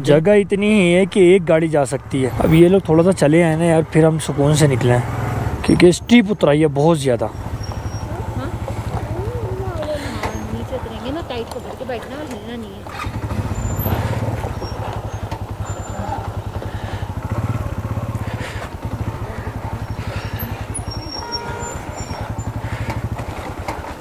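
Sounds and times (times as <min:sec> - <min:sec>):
motorcycle engine at low revs: 0:00.6 - 0:24.0.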